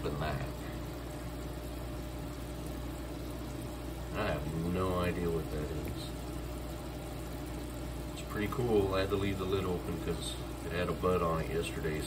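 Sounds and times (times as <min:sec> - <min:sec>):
aquarium filter humming: 0:00.0 - 0:12.0
water trickling: 0:00.0 - 0:12.0.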